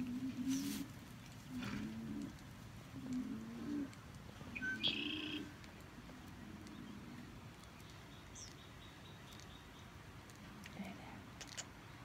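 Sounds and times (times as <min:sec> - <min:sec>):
bird cooing: 0:00.0 - 0:00.8, 0:01.5 - 0:02.4, 0:03.0 - 0:05.6
bird chirp: 0:04.5 - 0:05.6, 0:06.6 - 0:10.0.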